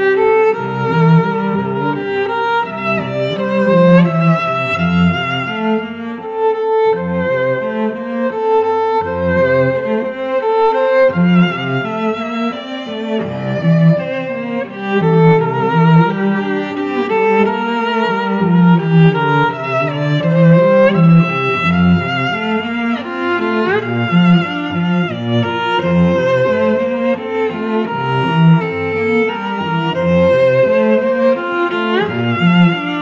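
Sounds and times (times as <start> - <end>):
cello line: 0.0 - 33.0
violin melody with vibrato: 0.0 - 33.0.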